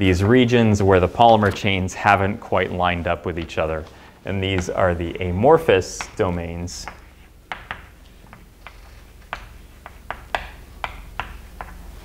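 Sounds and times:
chalk tapping on blackboard: 5.8 - 11.9.

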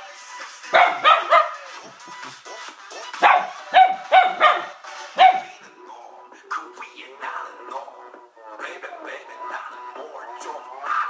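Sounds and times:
pop music from a laptop: 0.0 - 11.0
dog barking: 0.7 - 1.6, 3.2 - 5.5.

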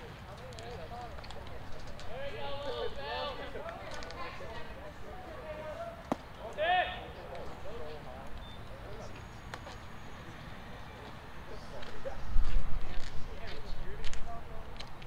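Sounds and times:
players calling and shouting: 0.0 - 14.8.

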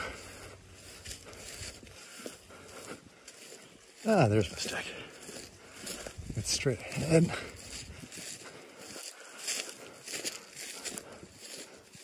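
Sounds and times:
footsteps swishing through dry grass: 0.0 - 12.0.

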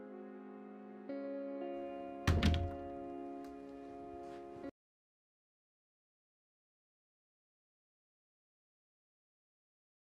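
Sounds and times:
background music of sustained chords: 0.0 - 4.7.

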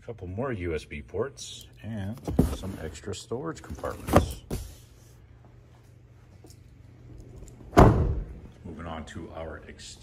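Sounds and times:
car door thud: 7.7 - 8.4.

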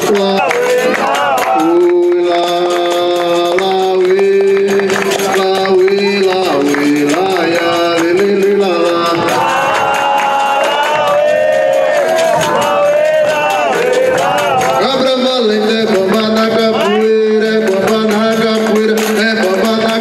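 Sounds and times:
hand drum and pandeiro: 0.0 - 20.0
voices singing a chant: 0.0 - 20.0.

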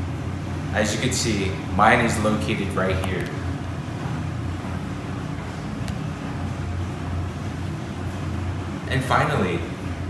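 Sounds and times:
ventilation hum: 0.0 - 10.0.

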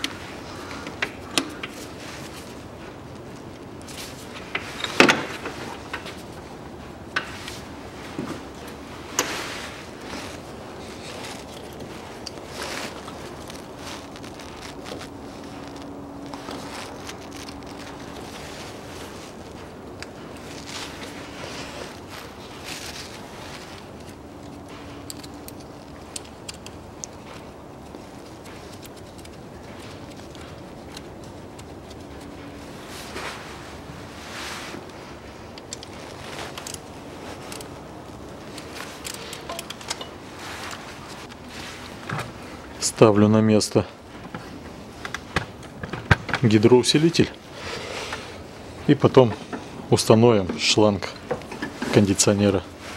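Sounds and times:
jacket sleeves rustling: 0.0 - 43.3, 46.5 - 52.9
metal parts clicking and scraping: 23.9 - 27.2, 38.4 - 41.4.

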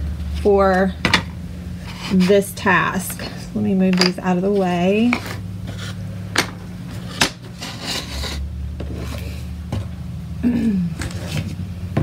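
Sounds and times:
wooden cutouts sliding on table: 5.1 - 9.5.

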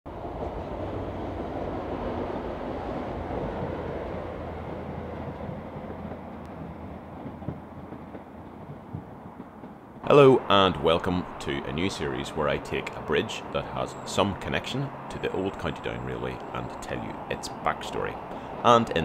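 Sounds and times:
train rumbling over bridge: 0.1 - 19.0.

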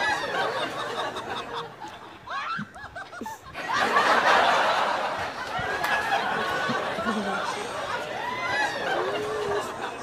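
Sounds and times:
person laughing: 2.3 - 3.6, 6.5 - 7.8.

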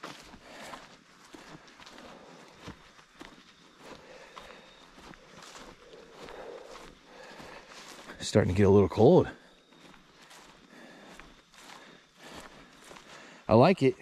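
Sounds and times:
footsteps on forest floor: 0.0 - 13.7.

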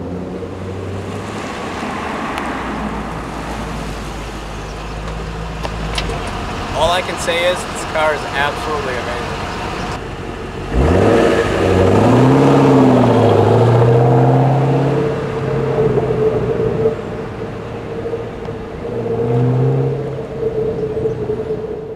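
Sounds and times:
car engine revving: 0.0 - 21.9.

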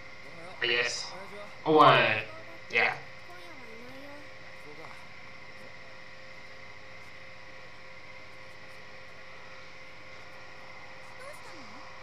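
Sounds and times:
faint electrical hum and whine: 0.0 - 12.0.

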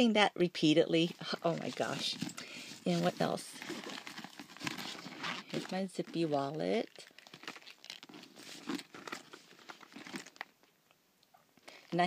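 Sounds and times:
wallet rustling and clicking: 1.2 - 10.6.

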